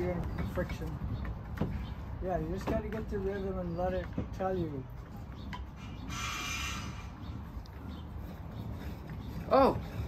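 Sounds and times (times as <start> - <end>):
pump drill scraping hiss: 5.8 - 7.2.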